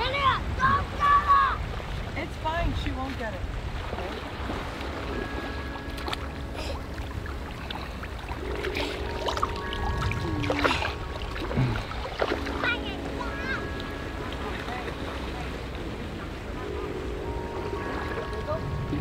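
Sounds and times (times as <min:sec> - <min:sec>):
small waves at shoreline: 0:00.0 - 0:19.0
soft music with sustained tones: 0:04.4 - 0:19.0.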